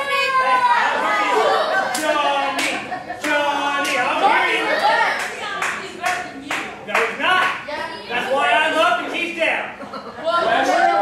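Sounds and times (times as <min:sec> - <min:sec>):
voices shouting: 0:00.0 - 0:06.0
rhythmic hand claps: 0:01.9 - 0:07.6.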